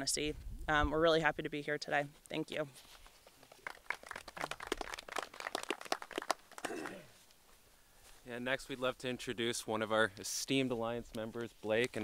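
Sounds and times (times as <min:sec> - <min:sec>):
light scattered applause: 0:03.4 - 0:07.1.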